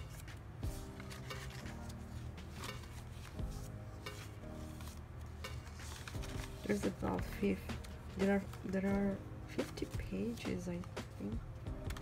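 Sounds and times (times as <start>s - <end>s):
paper pages turning: 0.0s - 11.3s
background music with held notes: 0.0s - 12.0s.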